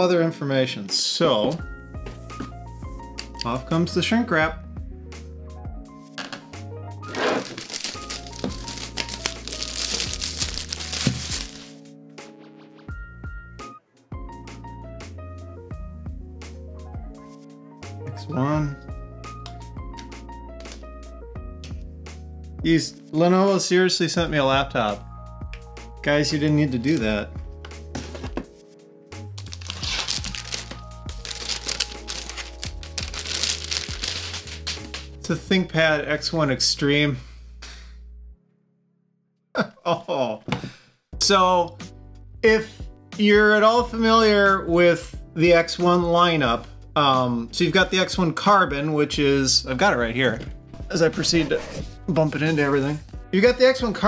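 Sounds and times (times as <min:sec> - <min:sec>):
background music: 0:00.0 - 0:38.7, 0:39.9 - 0:54.0
plastic shrink wrap crinkling: 0:07.1 - 0:11.7, 0:29.4 - 0:35.1.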